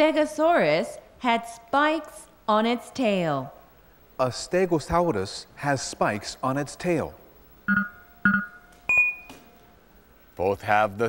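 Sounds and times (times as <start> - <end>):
electronic chime tones: 7.7 - 9.3
high ping: 7.7 - 9.4.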